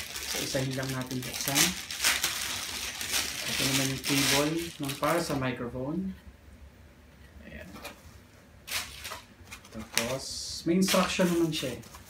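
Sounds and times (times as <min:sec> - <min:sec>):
plastic bags rustling in cardboard box: 0:00.0 - 0:05.4.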